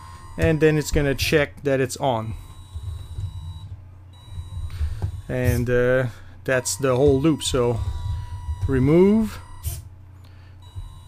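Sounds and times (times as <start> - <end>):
thin high motor whine: 0.0 - 9.9
electric motors humming: 0.0 - 11.0.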